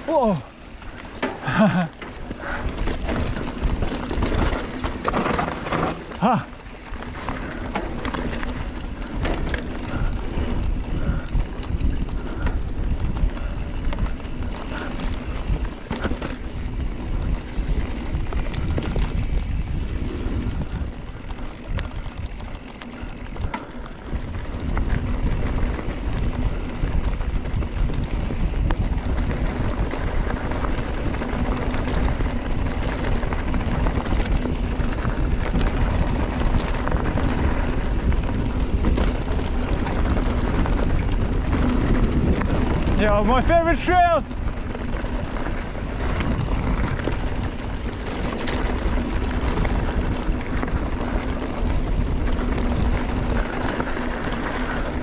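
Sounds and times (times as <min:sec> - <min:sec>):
bike chain rattling: 0:00.0 - 0:55.0
tyres rumbling over dirt: 0:00.0 - 0:55.0
wind rushing over microphone: 0:00.0 - 0:55.0.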